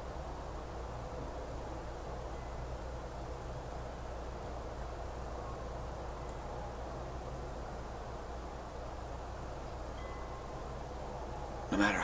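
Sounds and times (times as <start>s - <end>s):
low hum and hiss: 0.0s - 12.0s
faint high ringing note: 2.3s - 2.8s, 9.9s - 12.0s.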